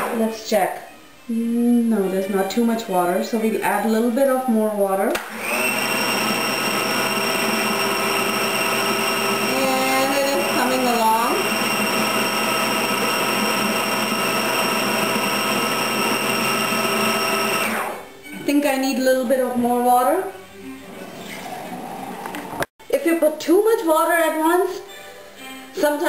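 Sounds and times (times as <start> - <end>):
food processor motor whining: 5.2 - 18.1.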